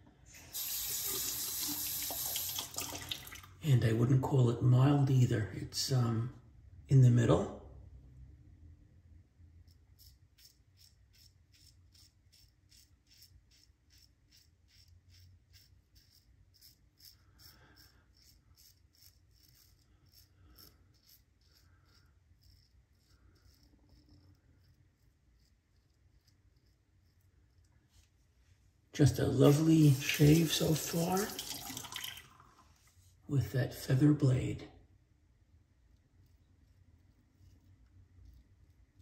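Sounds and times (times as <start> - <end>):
razor scraping stubble: 9.6 - 28.0, 29.0 - 31.4.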